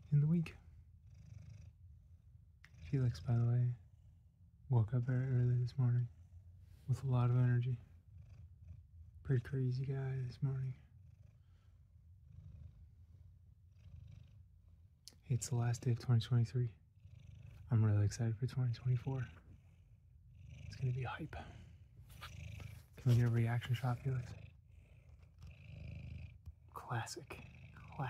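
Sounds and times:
cat purring: 0.0s - 28.0s.

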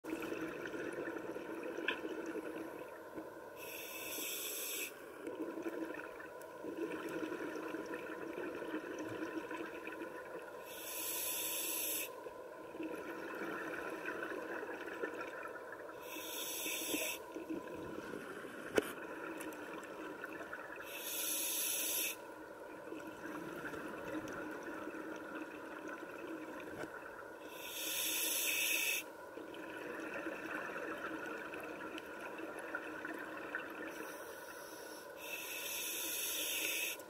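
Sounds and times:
exhaled air bubbling: 0.1s - 28.2s, 28.9s - 34.1s
regulator inhalation hiss: 3.6s - 5.0s, 10.6s - 12.2s, 16.0s - 17.2s, 20.9s - 22.2s, 27.5s - 29.1s, 34.0s - 37.0s.

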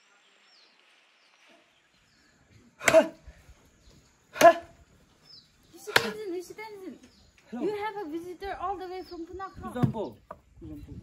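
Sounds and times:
wooden pole thudding: 5.9s - 6.2s, 9.7s - 10.4s.

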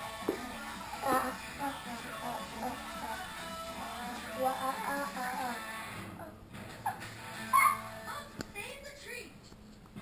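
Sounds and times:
cartoon music with singing: 0.0s - 8.5s.

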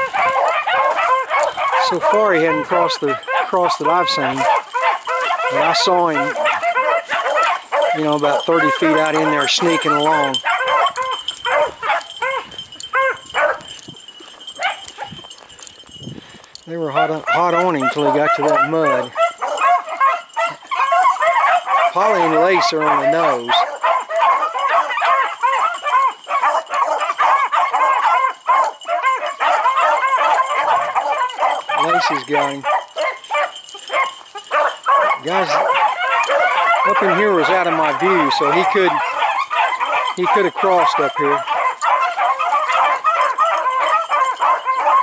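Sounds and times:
beagles baying: 0.0s - 45.0s.

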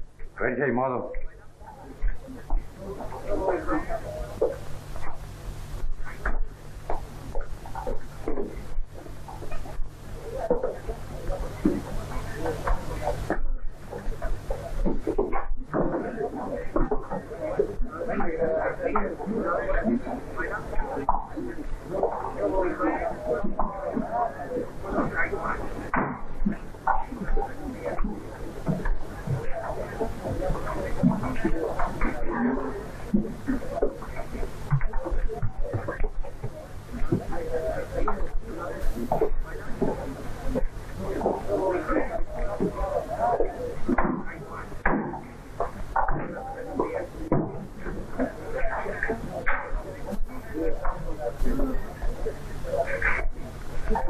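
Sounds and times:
chatter of many voices: 0.0s - 54.0s
low electrical hum: 0.0s - 54.0s.

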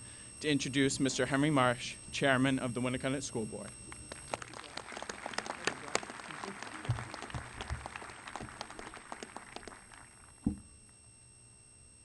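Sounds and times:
audience applauding: 4.0s - 10.4s
thump on microphone: 10.4s - 10.7s.

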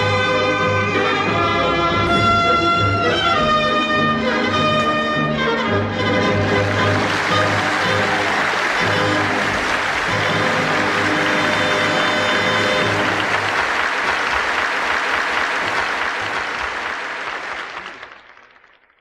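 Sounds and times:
orchestra closing chord: 1.6s - 4.1s
audience applauding: 6.2s - 19.0s.

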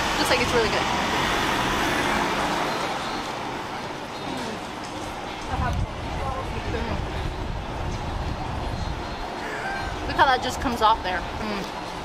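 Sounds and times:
motor vehicle passing: 0.1s - 3.6s.

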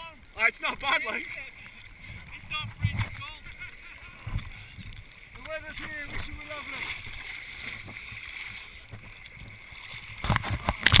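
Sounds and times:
shallow water splashing around feet: 1.2s - 11.0s.

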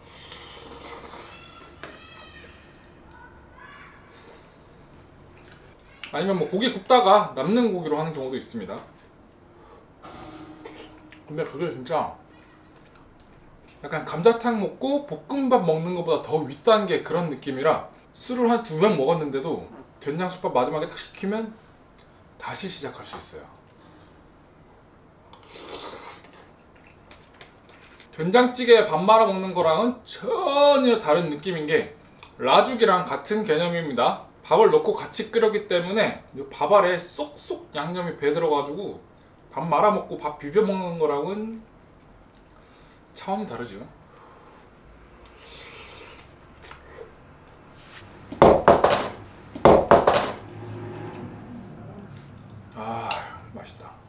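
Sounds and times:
person blowing on food: 0.0s - 1.4s, 25.4s - 26.3s
short noisy scrape: 10.0s - 12.7s.

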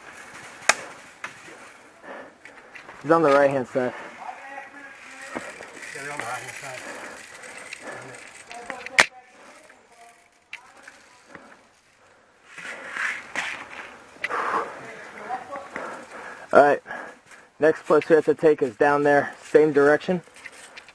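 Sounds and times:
faint voices: 3.6s - 12.2s.

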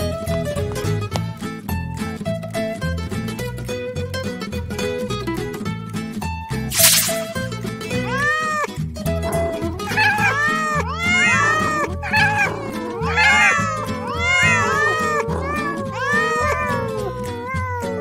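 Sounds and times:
many cats meowing: 6.8s - 18.0s.

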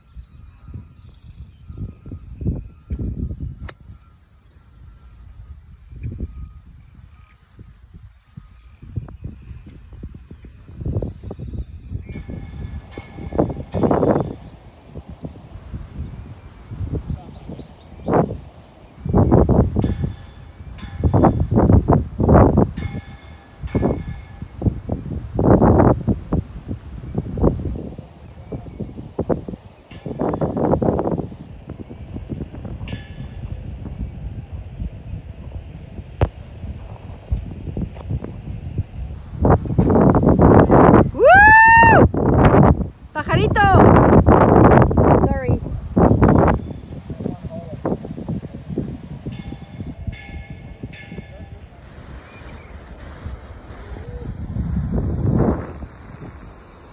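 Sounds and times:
wind buffeting microphone: 0.0s - 56.9s
bird chirping: 11.1s - 15.0s, 16.0s - 18.2s, 18.8s - 22.3s, 24.6s - 25.2s, 26.6s - 27.4s, 28.2s - 29.0s, 29.8s - 30.4s, 31.6s - 32.4s, 39.6s - 40.4s.

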